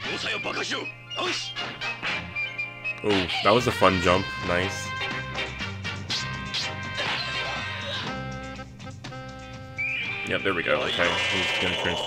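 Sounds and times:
orchestral background music: 0.0s - 12.0s.

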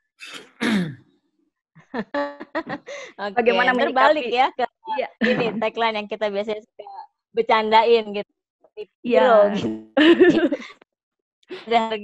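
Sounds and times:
person clearing throat: 0.2s - 1.1s.

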